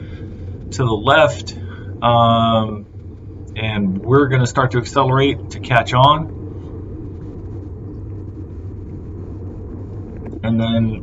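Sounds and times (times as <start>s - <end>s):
wind rumble: 0.0s - 11.0s.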